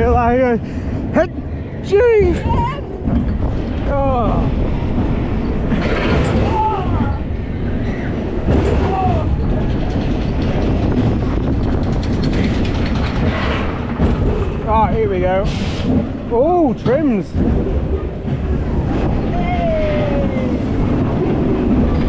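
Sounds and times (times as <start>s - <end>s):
roller coaster wheels rumbling: 0.0s - 22.0s
riders whooping: 5.8s - 9.6s, 18.9s - 21.3s.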